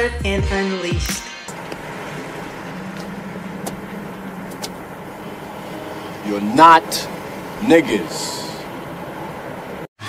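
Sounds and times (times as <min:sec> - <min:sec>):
low hum: 0:01.5 - 0:07.6.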